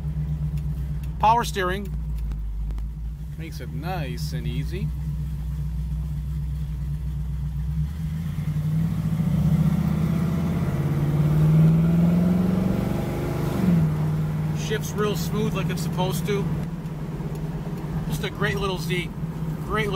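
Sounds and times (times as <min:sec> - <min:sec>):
car engine accelerating: 0:00.0 - 0:19.9.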